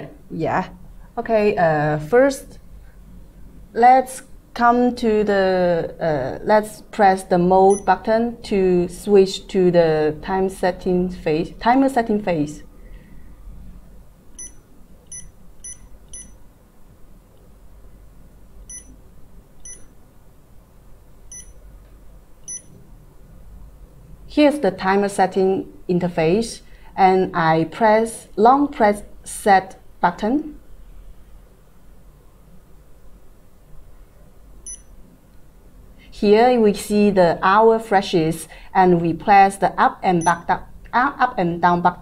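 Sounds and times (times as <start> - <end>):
short high beeps: 14.4 - 16.4, 18.7 - 19.0, 19.6 - 19.9, 21.3 - 21.6, 22.5 - 22.8, 34.7 - 34.9, 40.2 - 40.5
short electronic beep: 21.3 - 21.6, 22.5 - 22.7, 34.7 - 34.9.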